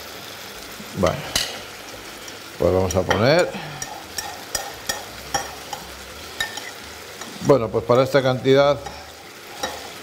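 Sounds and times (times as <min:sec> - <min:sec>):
meat sizzling in a hot pan: 0:00.0 - 0:10.0.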